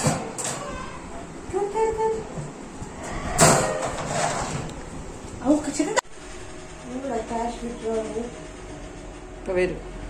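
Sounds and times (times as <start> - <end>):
plastic tray scraping out of birdcage: 3.2 - 4.7.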